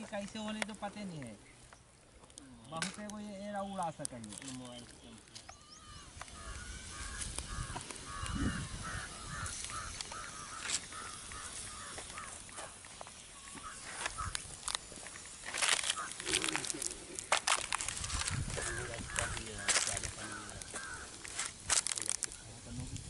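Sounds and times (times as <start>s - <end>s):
wood fire crackling: 0.0s - 23.0s
bird calling in short notes: 5.3s - 12.4s.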